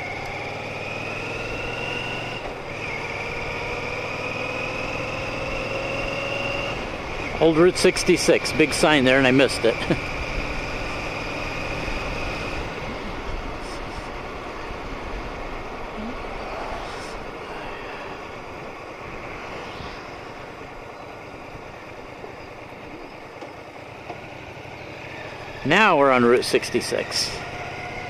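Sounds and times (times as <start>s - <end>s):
motorcycle engine: 0.0s - 28.0s.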